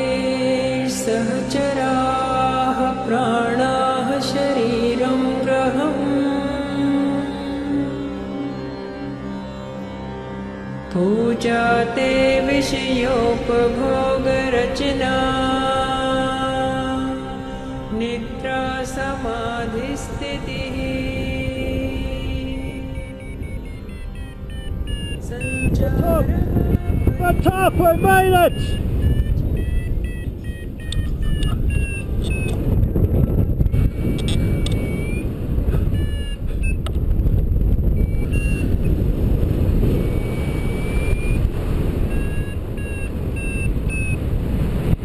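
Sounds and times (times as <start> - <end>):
wind rushing over microphone: 18.7 - 45.0
short high electronic beeps: 23.0 - 26.3, 27.0 - 32.6.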